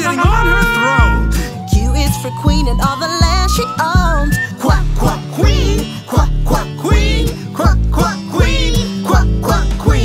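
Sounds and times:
voice chanting: 0.0s - 1.6s
upbeat children's song: 0.0s - 10.0s.

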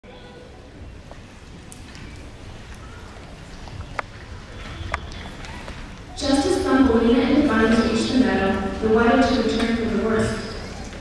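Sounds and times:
faint murmur: 0.0s - 11.0s.

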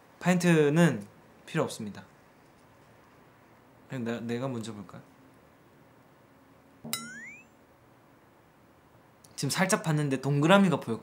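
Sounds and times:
rising ping sound effect: 6.9s - 7.6s.

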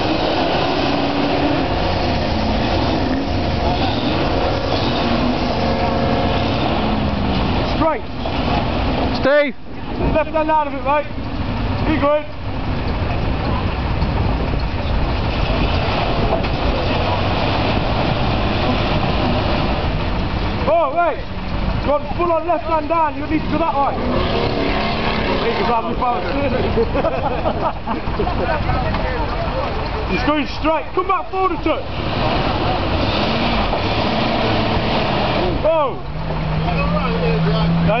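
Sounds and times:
rushing noise: 0.0s - 9.1s
off-road vehicle engines: 0.0s - 38.0s
voices in background: 27.8s - 31.9s.

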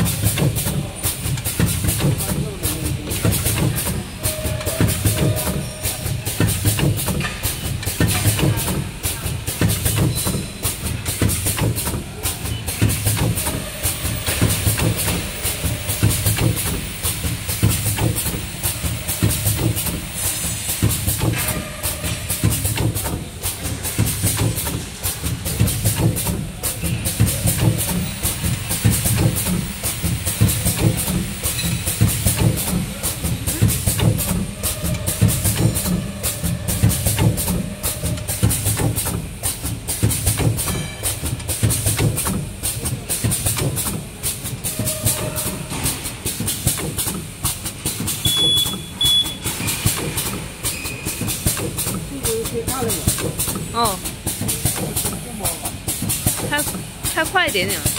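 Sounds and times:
packaging machine clattering: 0.0s - 57.9s.

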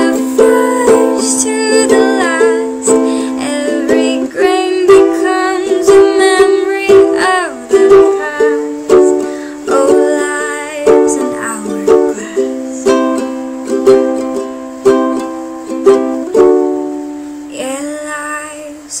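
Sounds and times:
ukulele strumming: 0.0s - 18.7s.

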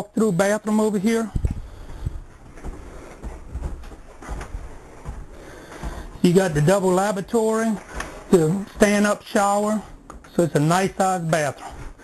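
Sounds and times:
footsteps on trailer floor: 0.8s - 12.0s
faint rustling: 1.0s - 12.0s.

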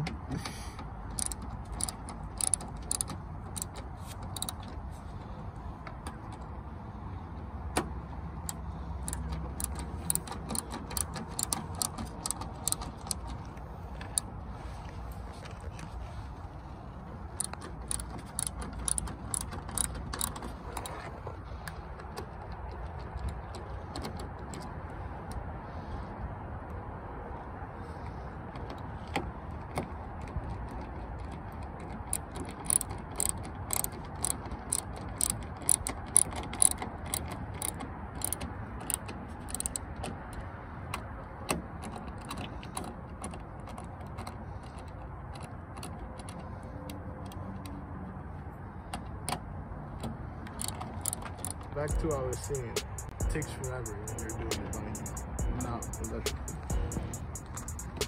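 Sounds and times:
hand ratchet clicking: 1.0s - 4.7s, 8.4s - 13.4s, 17.4s - 21.0s, 31.1s - 40.4s, 50.4s - 58.0s.

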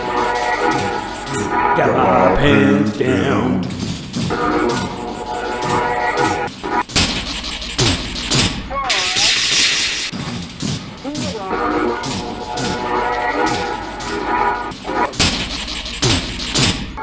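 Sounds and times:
experimental music with a beat: 0.0s - 17.0s.

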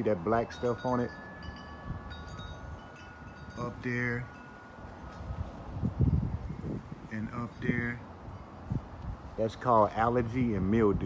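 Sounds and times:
chimes ringing: 0.0s - 6.4s.

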